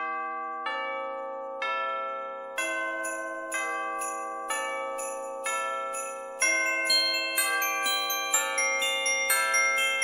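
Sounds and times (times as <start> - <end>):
bell-like chime music: 0.0 - 10.0.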